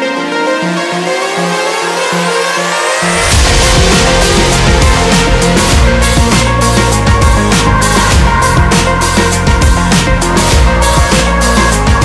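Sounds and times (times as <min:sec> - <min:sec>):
electronic music with synth sweep: 0:00.0 - 0:12.0
deep bass and drums: 0:03.1 - 0:12.0.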